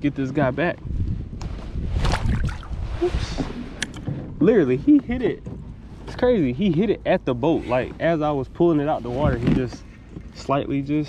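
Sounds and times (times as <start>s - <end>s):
wind on microphone: 0.2s - 4.6s.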